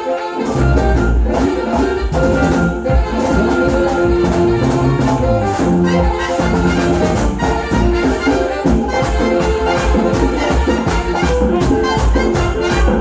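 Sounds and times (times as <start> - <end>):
hand drums and percussion: 0.0 - 13.0
latin dance band playing: 0.0 - 13.0.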